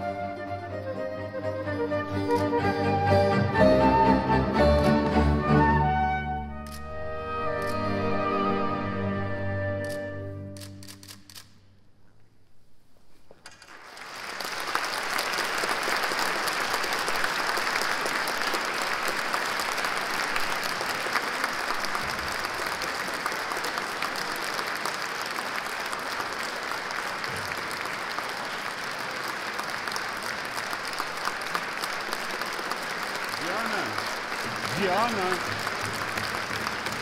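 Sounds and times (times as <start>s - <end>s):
audience applauding: 13.5s - 37.0s.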